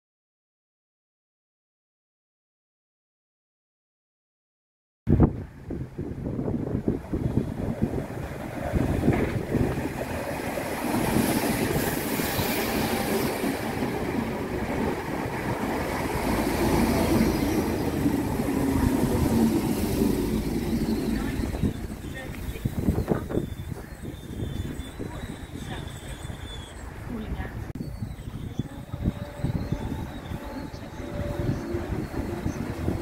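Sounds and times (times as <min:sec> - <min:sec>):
train wheels rumbling on rail: 0:05.8 - 0:33.0.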